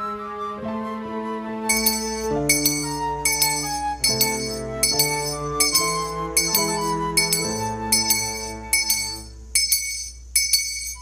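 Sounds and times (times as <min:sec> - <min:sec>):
keyboard chord: 0:01.6 - 0:09.5
altar bells ringing: 0:01.7 - 0:11.0.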